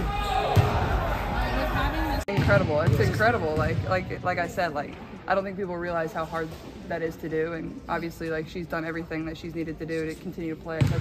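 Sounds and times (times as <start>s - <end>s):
basketball bouncing on wooden court: 2.3s - 4.2s, 10.8s - 11.0s.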